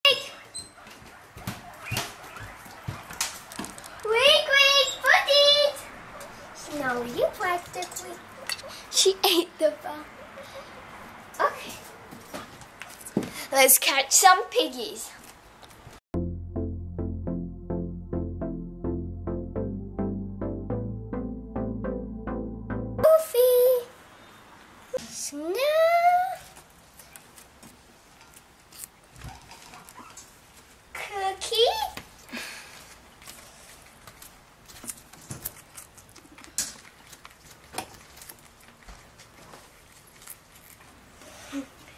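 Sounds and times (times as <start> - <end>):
guinea pigs squealing: 0.2 - 3.3.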